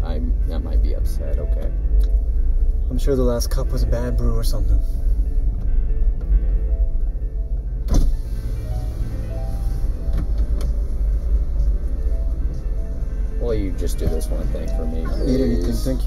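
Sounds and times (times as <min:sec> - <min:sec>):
car engine idling: 0:00.0 - 0:16.0
quiet background music: 0:00.0 - 0:16.0.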